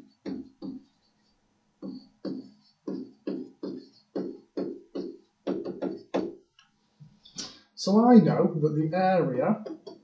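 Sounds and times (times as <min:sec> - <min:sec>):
stylus tapping on screen: 0:00.1 - 0:00.9, 0:01.8 - 0:06.5, 0:09.6 - 0:10.0.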